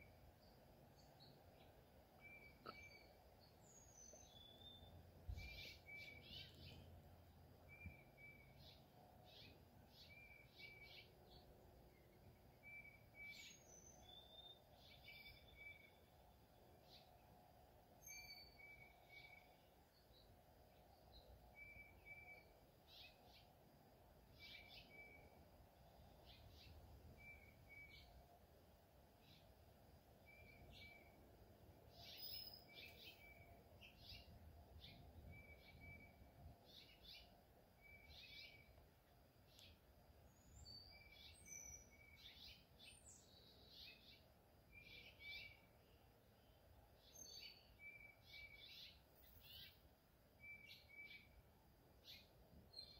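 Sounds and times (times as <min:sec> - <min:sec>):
faint bird-like chirping: 0:00.0 - 0:28.5, 0:29.1 - 0:52.9.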